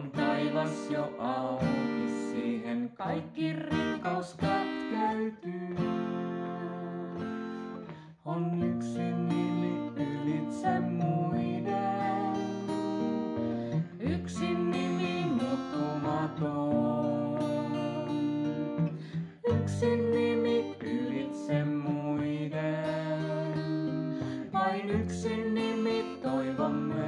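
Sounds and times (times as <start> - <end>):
acoustic guitar: 0.0 - 27.0
woman and man singing: 0.0 - 27.0.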